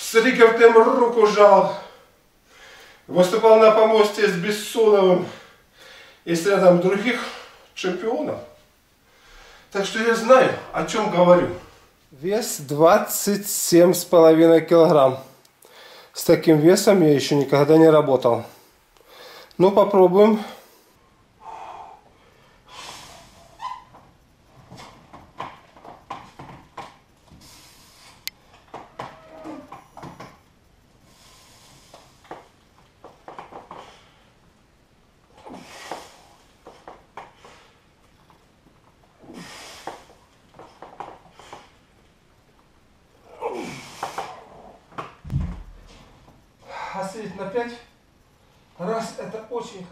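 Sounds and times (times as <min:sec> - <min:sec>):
man breathing hard: 0:05.4 - 0:06.2, 0:09.1 - 0:09.7, 0:20.4 - 0:23.6
dumbbells thumping down: 0:45.2 - 0:46.1.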